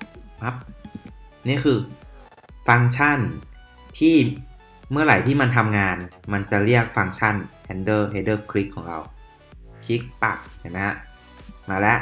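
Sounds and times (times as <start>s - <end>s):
faint background music: 0.0s - 12.0s
man speaking: 0.3s - 2.0s, 2.7s - 12.0s.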